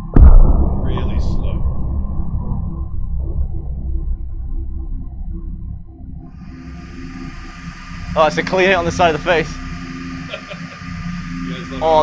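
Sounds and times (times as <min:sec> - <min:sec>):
slowed deep impact sound: 0:00.0 - 0:10.3.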